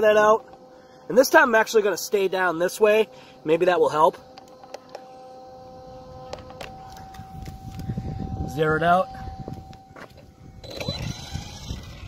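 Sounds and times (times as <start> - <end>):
faint high hum: 0.0 - 12.0.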